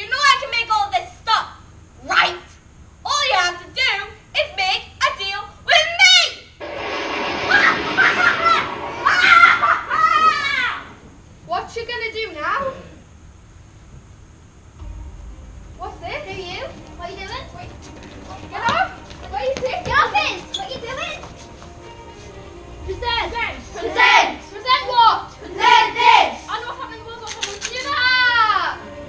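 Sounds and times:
steady rushing hiss: 6.6 - 29.0
children shouting: 7.5 - 11.0, 23.8 - 26.5.

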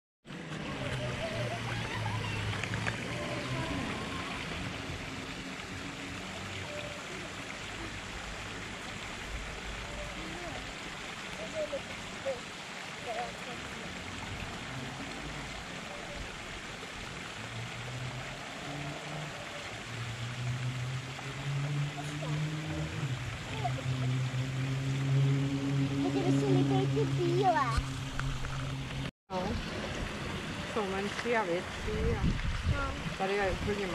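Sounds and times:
water running over rocks: 0.3 - 33.9.

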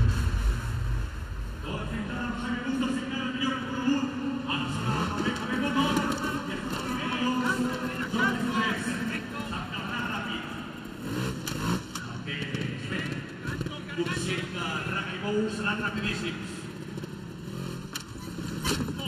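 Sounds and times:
motorcycle engine revving: 0.0 - 19.0.

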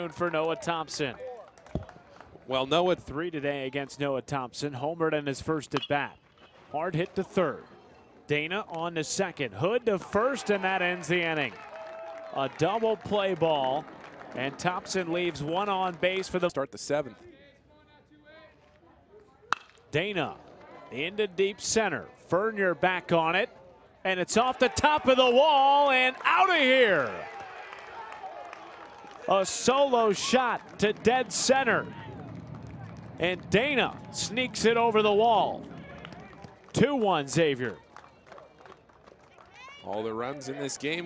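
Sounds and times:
faint crowd chatter: 6.5 - 8.3, 16.9 - 25.3, 27.8 - 41.0
man commentating: 8.3 - 11.6, 12.3 - 17.1, 24.1 - 27.3, 29.2 - 32.4, 33.1 - 37.8
baseball bat cracking ball: 19.5 - 19.9.

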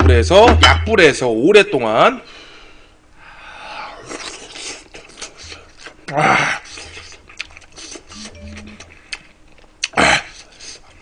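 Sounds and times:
man chewing food: 4.0 - 11.0.

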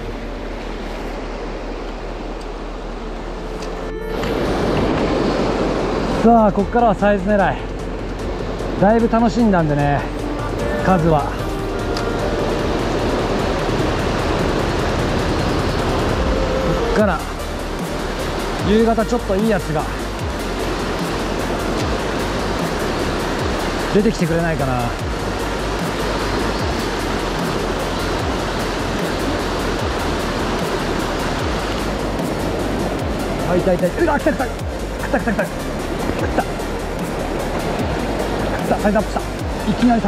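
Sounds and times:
stream rushing over rocks: 0.0 - 40.0
background music with drum beat: 10.2 - 40.0.

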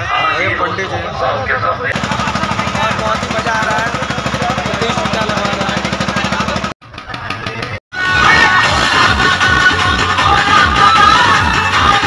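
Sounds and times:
voices: 0.0 - 9.1
engine running: 1.9 - 7.8.

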